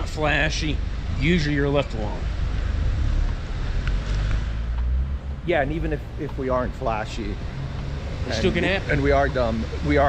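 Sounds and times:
traffic noise: 0:00.0 - 0:10.0.

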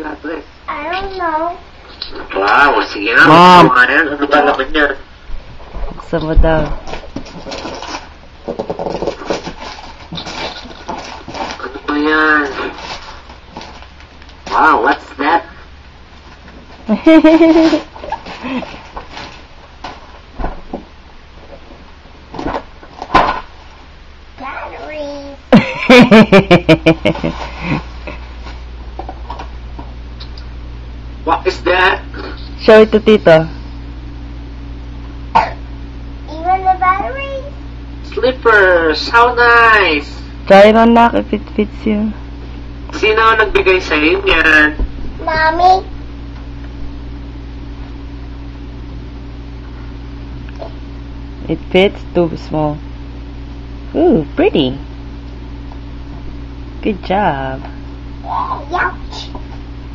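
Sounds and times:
wrapping paper crinkling and tearing: 0:06.9 - 0:08.1, 0:09.0 - 0:14.1
short cough: 0:35.3 - 0:35.6.

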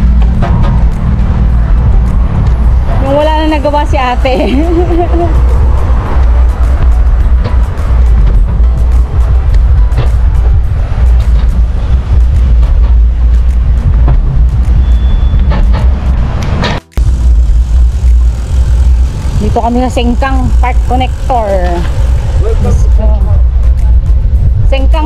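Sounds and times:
wind buffeting microphone: 0:00.0 - 0:25.0
bike clicks and rattles: 0:04.3 - 0:25.0.

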